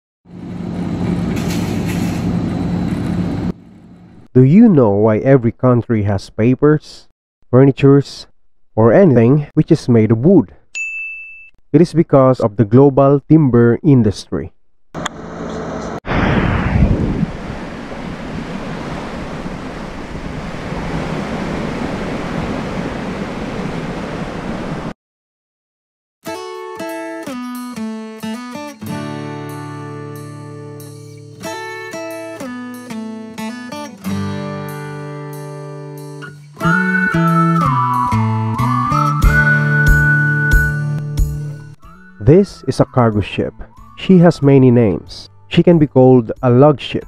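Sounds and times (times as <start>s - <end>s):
bow wave rushing and splashing: 16.0s - 24.9s
wind on microphone: 16.0s - 24.9s.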